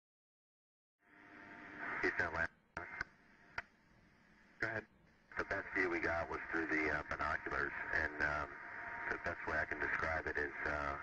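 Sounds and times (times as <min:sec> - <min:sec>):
voice over radio transmission: 0:02.0 - 0:02.5, 0:04.6 - 0:11.0.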